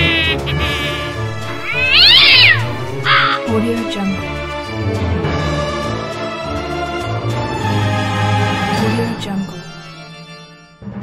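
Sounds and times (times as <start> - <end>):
spooky background music: 0.0 - 11.0
cat yowling meow: 1.5 - 3.5.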